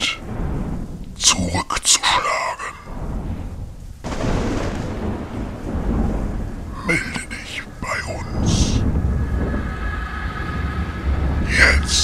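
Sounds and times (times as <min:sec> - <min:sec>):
deep ominous drone: 0:02.2 - 0:12.0.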